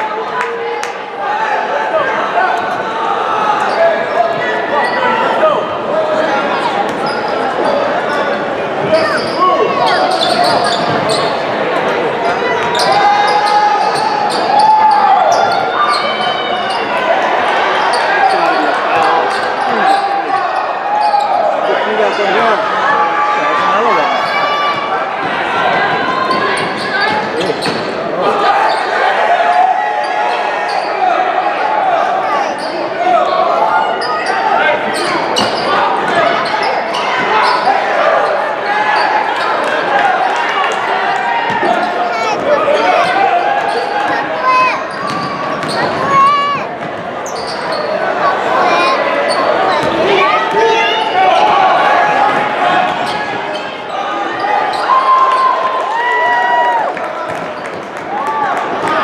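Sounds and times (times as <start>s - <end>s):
people shouting and chattering: 0.0s - 59.0s.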